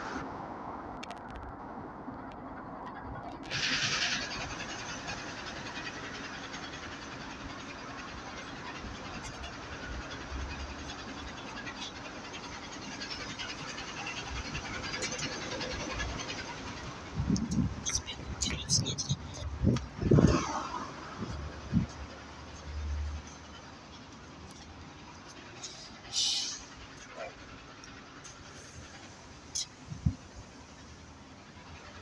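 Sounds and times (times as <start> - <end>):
bus engine hum: 0.0 - 32.0
road noise: 0.0 - 32.0.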